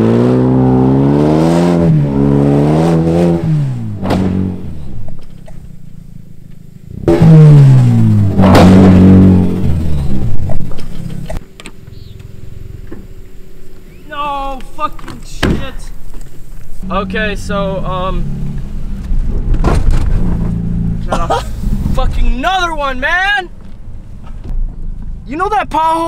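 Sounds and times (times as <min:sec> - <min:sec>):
turbocharged car engine revving: 0:00.0 - 0:15.0, 0:15.8 - 0:22.5
car knocking over trench: 0:03.2 - 0:05.7, 0:19.0 - 0:21.8.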